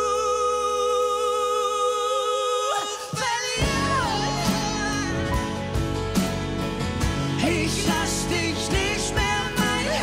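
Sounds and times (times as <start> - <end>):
male and female voices singing: 0.0 - 5.6, 7.3 - 10.0
acoustic guitar: 0.0 - 10.0.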